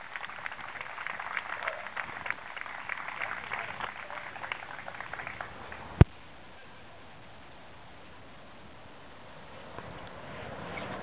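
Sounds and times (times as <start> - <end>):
small crowd applauding: 0.0 - 6.0.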